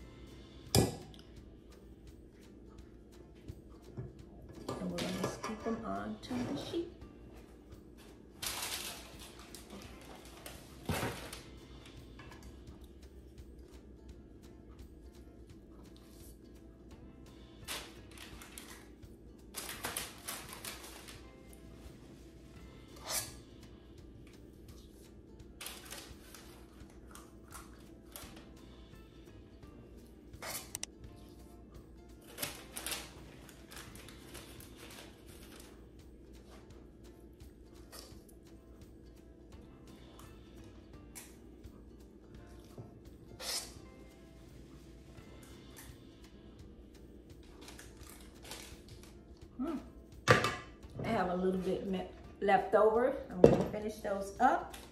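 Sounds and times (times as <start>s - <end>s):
soft background music: 0.0s - 54.9s.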